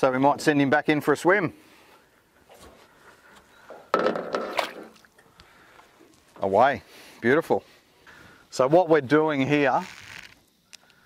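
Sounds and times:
fish splashing into water: 4.0 - 5.2.

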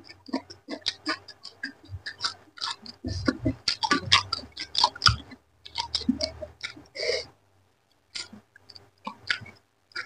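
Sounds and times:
person chewing food: 0.0 - 7.3, 7.9 - 10.0.

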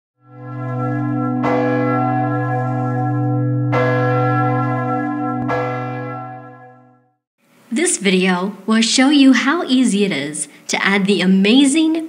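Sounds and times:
church bell tolling: 0.2 - 7.2.

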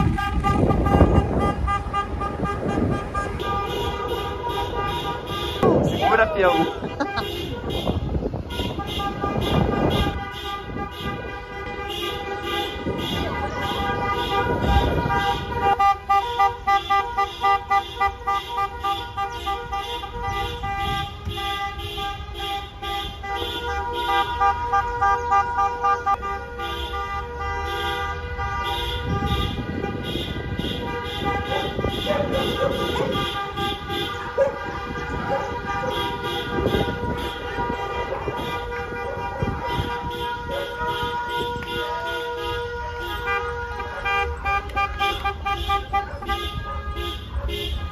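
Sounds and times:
car engines: 0.0 - 47.9
car horns honking: 0.0 - 47.9.

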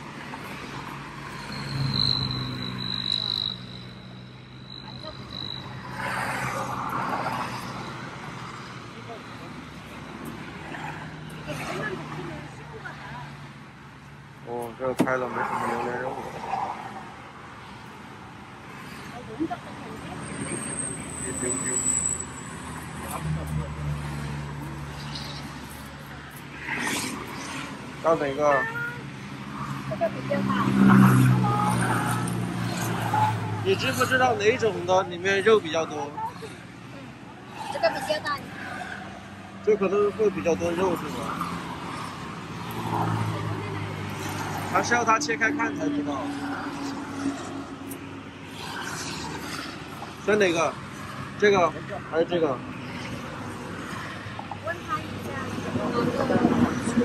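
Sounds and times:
highway traffic passing: 0.0 - 57.0.

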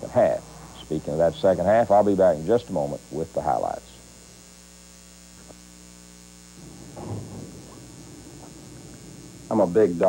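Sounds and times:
electrical mains hum: 0.0 - 10.0
faint rough room noise: 0.0 - 10.0.

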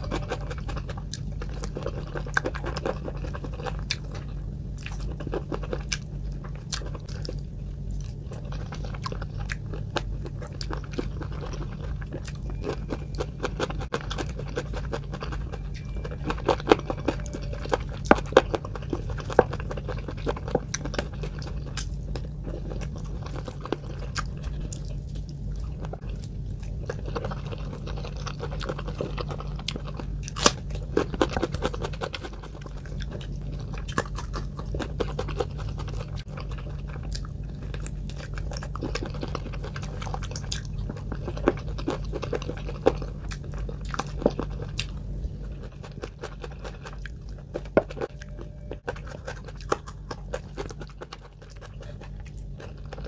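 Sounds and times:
chewing and crunching: 0.0 - 53.0
steady low hum: 0.0 - 53.0
wet squishing of food: 0.0 - 53.0.

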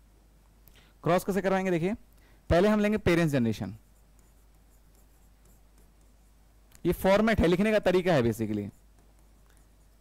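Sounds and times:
man talking: 1.0 - 3.8, 6.8 - 8.8.

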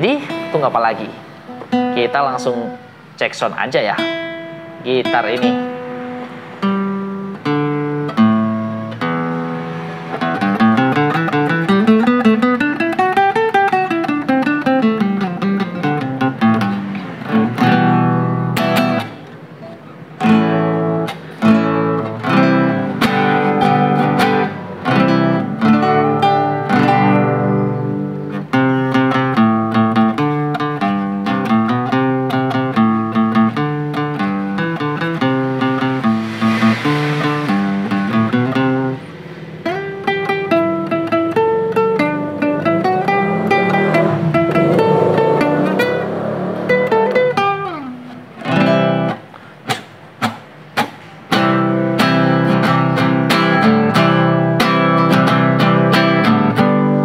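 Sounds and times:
nylon-string guitar plucked: 0.0 - 57.0.

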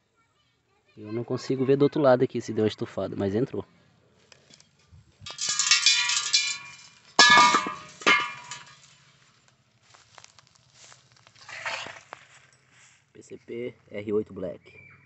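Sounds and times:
loud metallic clangs ringing: 5.3 - 8.8
soft rustling: 6.6 - 13.2.

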